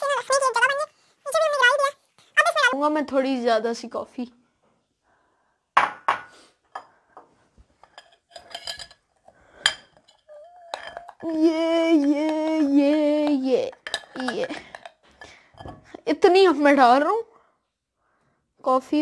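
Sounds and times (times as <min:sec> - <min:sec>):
metal spoon clinking on glass bowl: 0:07.8 - 0:12.6, 0:13.2 - 0:15.8.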